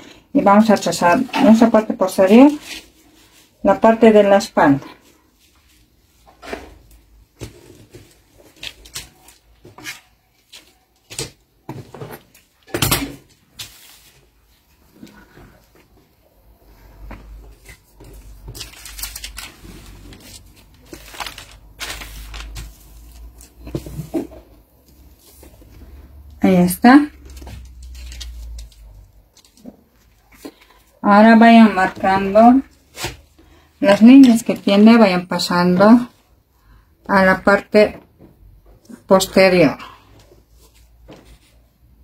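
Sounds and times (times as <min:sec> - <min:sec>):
paper rustling: 0:05.1 - 0:11.3, 0:17.5 - 0:24.2, 0:27.2 - 0:31.0.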